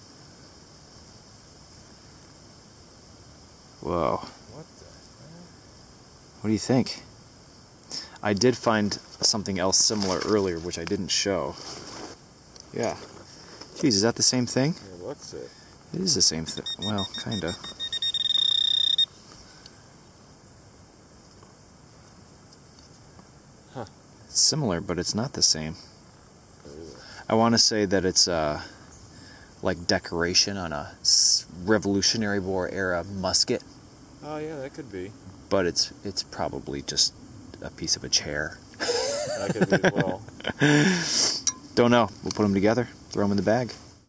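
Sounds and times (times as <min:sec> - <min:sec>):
steady background hiss: 0:00.0 - 0:44.0
thin high steady tone: 0:13.8 - 0:20.1, 0:31.1 - 0:42.7
metal detector probe high tone: 0:16.4 - 0:19.2
man exclaiming: 0:39.3 - 0:40.3.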